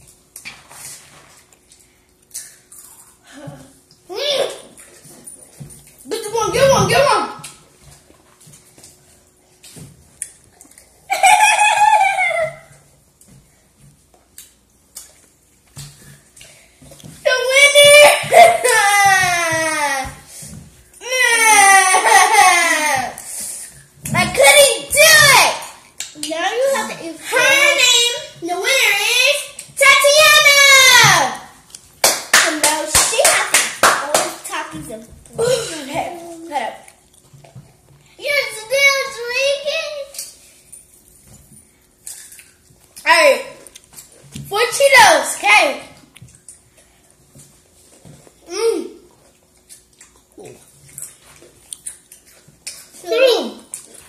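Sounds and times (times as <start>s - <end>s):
quick hand clapping: 32.0s - 34.4s.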